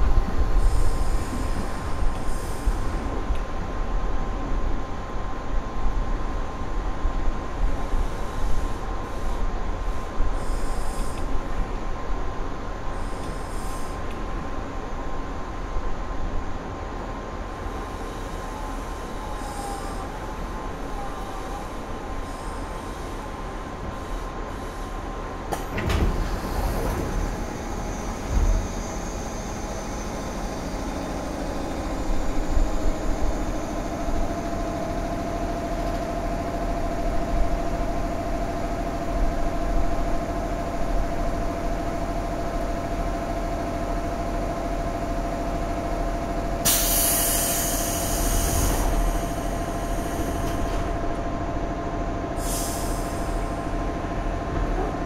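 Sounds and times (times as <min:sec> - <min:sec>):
train electrical hum: 0:00.0 - 0:55.0.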